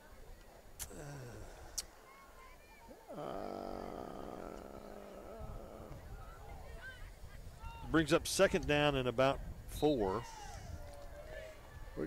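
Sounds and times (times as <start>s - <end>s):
man saying uhhh: 0.8s - 1.8s, 3.1s - 6.0s.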